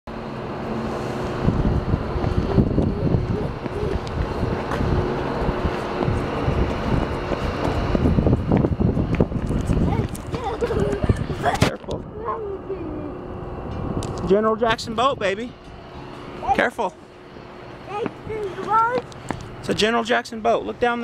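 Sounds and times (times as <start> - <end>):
steady low hum: 0.1 - 21.0
wind buffeting microphone: 0.5 - 19.8.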